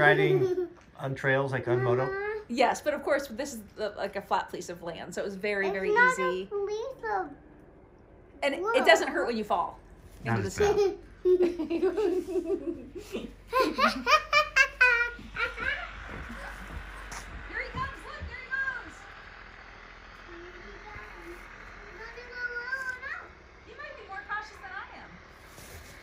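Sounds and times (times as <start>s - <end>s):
woman and child laughing: 10.6s - 15.9s.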